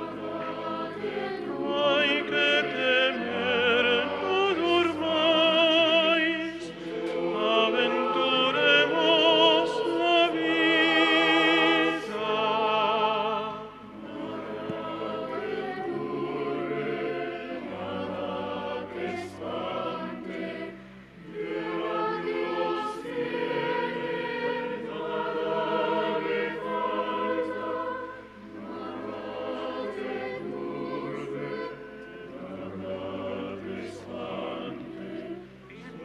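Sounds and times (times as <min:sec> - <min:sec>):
choir singing a hymn: 0:00.0 - 0:36.0.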